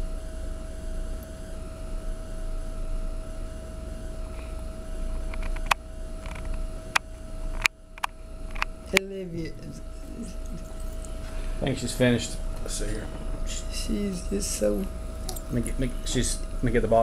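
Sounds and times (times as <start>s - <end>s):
low room rumble and hum: 0.0s - 17.0s.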